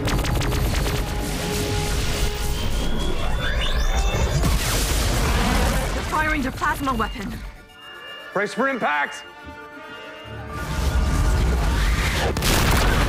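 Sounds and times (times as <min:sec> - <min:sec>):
dramatic orchestral music: 0:00.0 - 0:03.4, 0:05.7 - 0:13.0.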